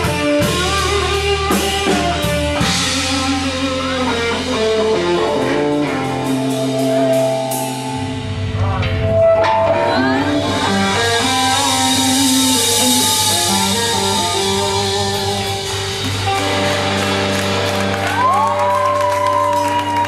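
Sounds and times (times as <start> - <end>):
guitar note bending up: 0.0 - 18.5
blues-rock band playing: 0.0 - 20.0
cymbals ringing: 3.2 - 17.4.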